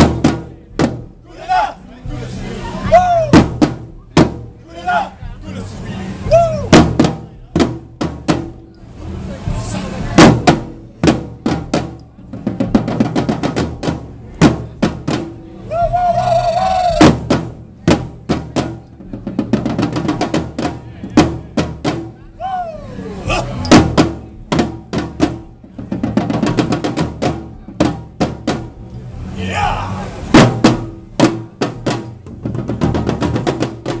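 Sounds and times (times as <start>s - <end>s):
snare drums playing rolls: 6.6s - 8.6s, 10.2s - 22.7s, 23.3s - 28.8s, 30.3s - 34.0s.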